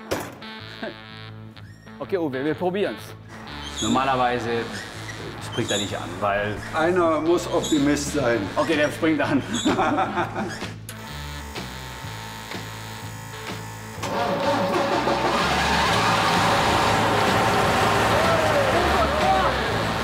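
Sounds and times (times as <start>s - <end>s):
background music: 0.0s - 20.0s
bus engine running: 14.1s - 20.0s
man shouting: 18.1s - 19.7s.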